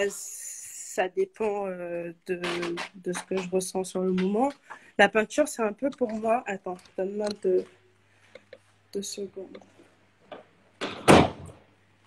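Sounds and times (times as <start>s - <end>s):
loud thump: 10.8s - 11.5s.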